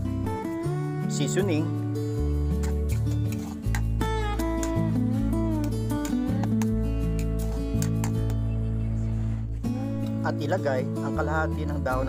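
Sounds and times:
guitar melody with bending notes: 0:00.0 - 0:12.0
steady bass notes: 0:00.0 - 0:12.0.

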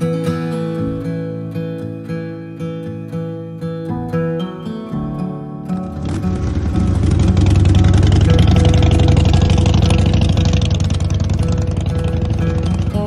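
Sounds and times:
faint background music: 0:00.0 - 0:13.0
motorcycle engine pulling away: 0:05.8 - 0:13.0.

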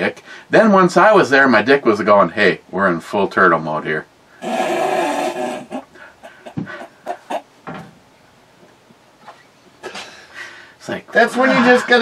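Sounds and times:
man sighing: 0:04.4 - 0:07.1
breathy snorts of laughter: 0:04.4 - 0:07.4.

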